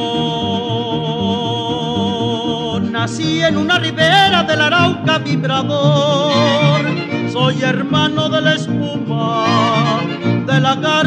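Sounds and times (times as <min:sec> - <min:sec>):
mariachi ensemble playing: 0:00.0 - 0:11.0.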